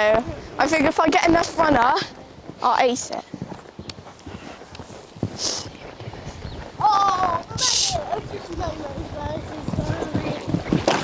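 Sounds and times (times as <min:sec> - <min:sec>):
hooves cantering on sand: 0:00.0 - 0:11.0.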